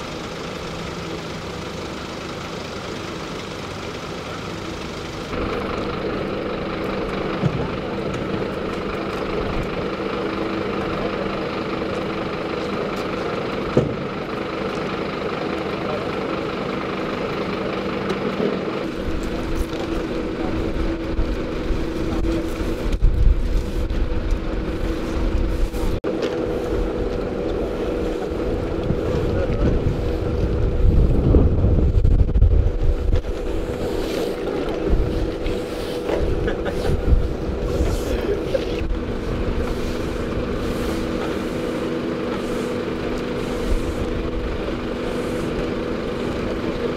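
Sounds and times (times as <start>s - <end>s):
vehicle engines idling: 0.0s - 46.9s
indistinct voices: 5.3s - 46.9s
low rumble: 18.8s - 41.8s.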